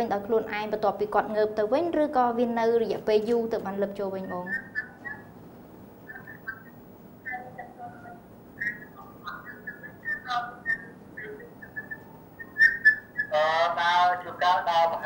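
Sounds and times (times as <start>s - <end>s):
faint steady hiss: 0.0s - 15.0s
high whistle-like chirps: 6.0s - 13.3s.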